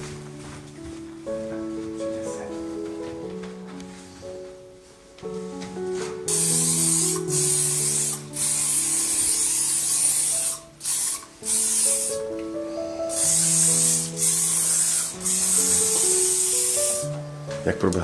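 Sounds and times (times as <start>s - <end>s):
background music: 0.0s - 18.0s
aerosol spray can hissing: 6.3s - 12.3s, 13.1s - 17.2s.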